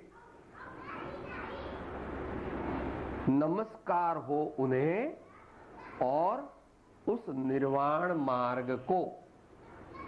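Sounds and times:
murmur of distant chatter: 0:00.0 - 0:10.0.

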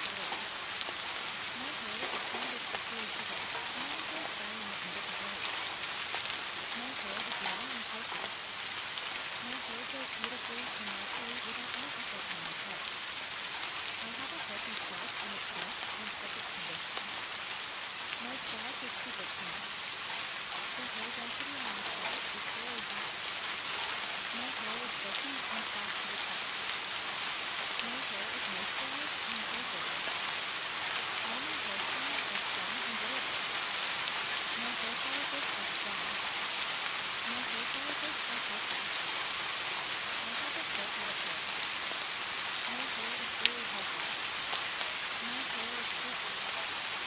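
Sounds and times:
steady rain: 0:00.0 - 0:47.0.

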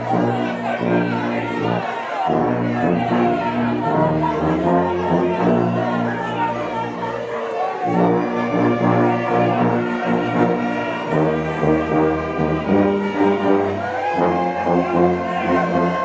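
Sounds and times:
tuba bass line: 0:00.0 - 0:06.8, 0:07.9 - 0:16.0
orchestra playing a hymn: 0:00.0 - 0:16.0.

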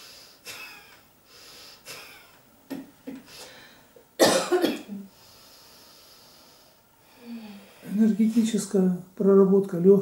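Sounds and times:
short breath: 0:03.3 - 0:03.9, 0:05.1 - 0:07.9
woman coughing: 0:04.2 - 0:05.1.

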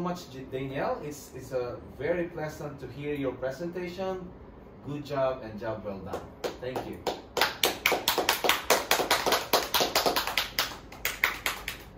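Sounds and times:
hand clapping: 0:06.1 - 0:11.9.

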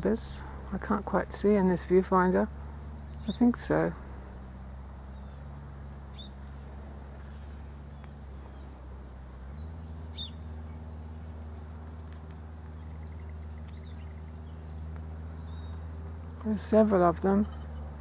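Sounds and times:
small birds chirping: 0:00.0 - 0:18.0
steady low hum: 0:00.0 - 0:18.0.

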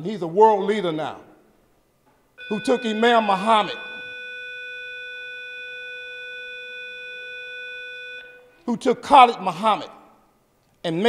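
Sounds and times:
steady electronic tone: 0:02.4 - 0:08.6.

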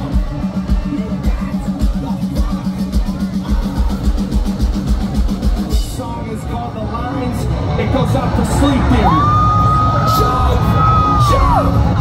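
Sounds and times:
metal band playing loud: 0:00.0 - 0:12.0.

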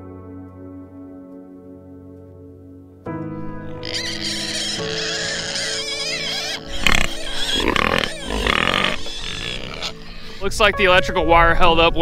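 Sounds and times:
background music: 0:00.0 - 0:12.0
pigs grunting and squealing: 0:03.6 - 0:10.7.

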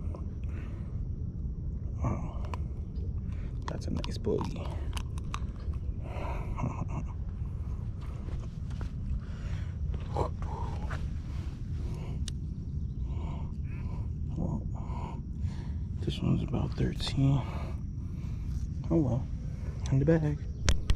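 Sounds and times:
steady low rumble: 0:00.0 - 0:20.9.

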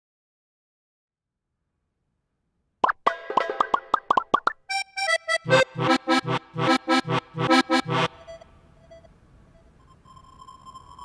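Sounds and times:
plopping notes bending in pitch: 0:02.8 - 0:04.6
electronic theme tune: 0:03.0 - 0:08.4.

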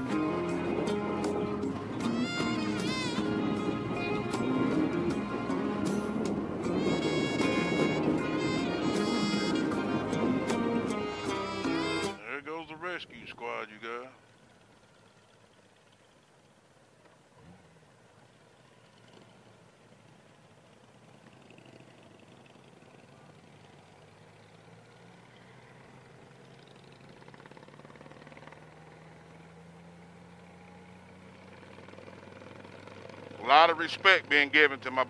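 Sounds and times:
muffled motorcycle engine: 0:00.0 - 0:35.0
road noise: 0:00.0 - 0:35.0.

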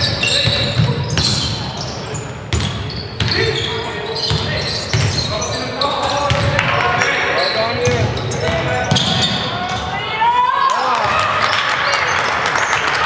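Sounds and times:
sneakers squeaking on floor: 0:00.0 - 0:10.2.

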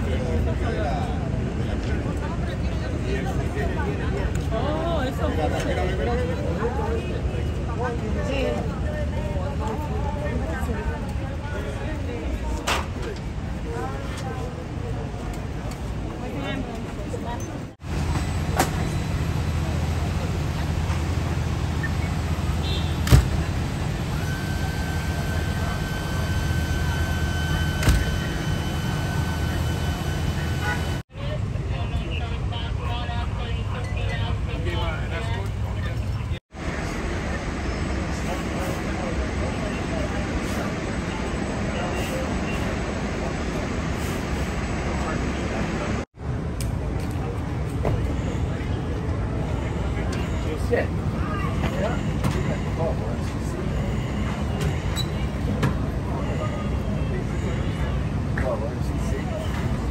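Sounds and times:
low engine rumble: 0:00.0 - 0:50.0
brief steady tone: 0:24.1 - 0:31.0, 0:49.4 - 0:58.1.

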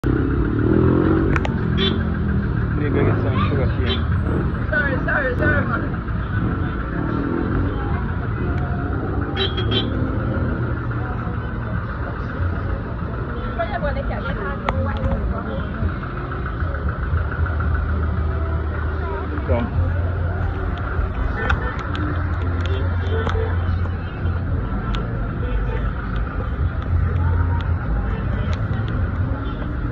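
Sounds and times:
vehicle engine idling: 0:00.0 - 0:29.9
people talking: 0:02.8 - 0:29.9.

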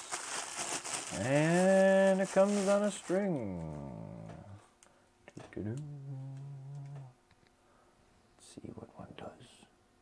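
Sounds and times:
man holding a sung note: 0:05.5 - 0:07.2.

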